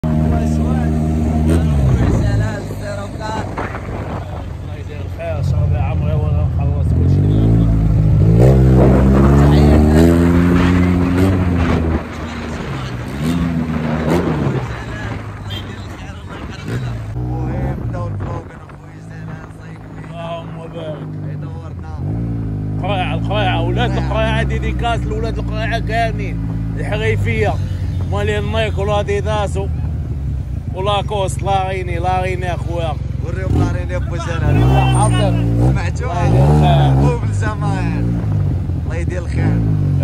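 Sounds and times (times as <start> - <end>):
wind rumble on microphone: 1.4 - 22.8, 35.6 - 40.0.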